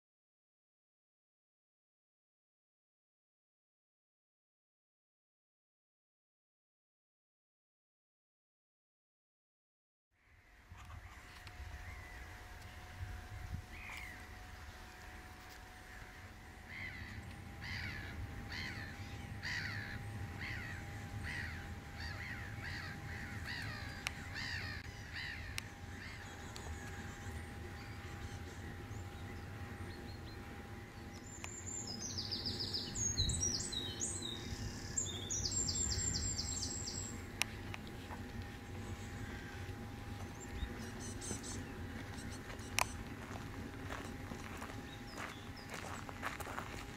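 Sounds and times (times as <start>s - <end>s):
bird calling: 10.2s - 46.9s
high-pitched birdsong: 16.2s - 46.9s.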